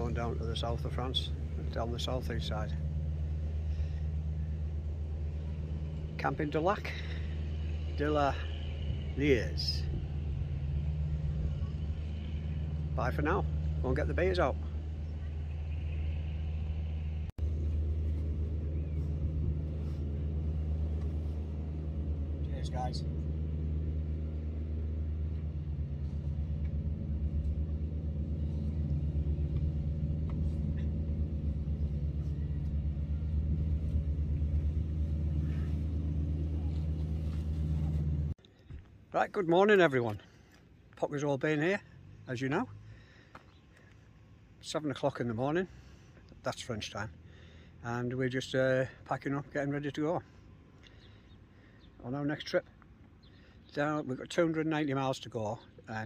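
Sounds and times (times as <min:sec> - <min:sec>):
low motor hum: 0:00.0 - 0:53.6
engine rumbling: 0:00.0 - 0:56.0.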